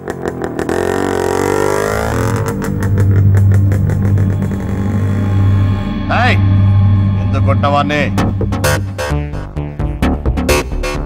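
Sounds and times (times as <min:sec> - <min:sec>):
motorcycle engines revving: 0:00.0 - 0:06.0
background music with drone and beat: 0:00.0 - 0:11.0.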